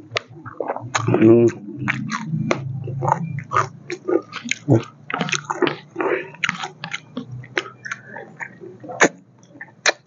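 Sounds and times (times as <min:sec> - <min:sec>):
person chewing with lip smacking: 0:00.0 - 0:10.0.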